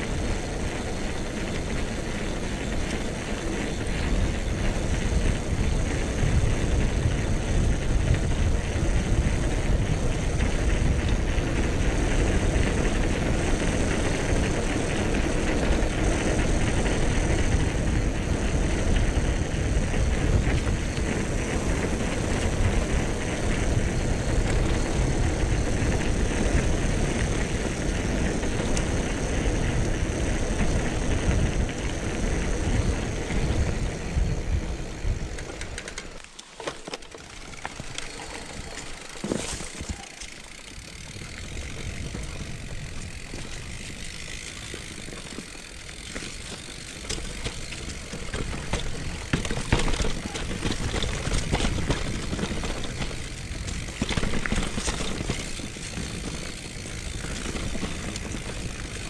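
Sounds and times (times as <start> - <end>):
wind rush on microphone: 0.0 - 35.8
bike tyres rumbling on concrete: 0.0 - 59.0.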